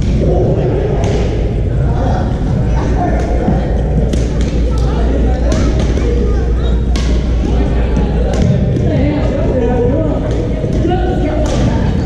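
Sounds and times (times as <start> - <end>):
chatter of voices: 0.0 - 12.0
rackets striking shuttlecock: 4.0 - 4.9, 6.8 - 7.4.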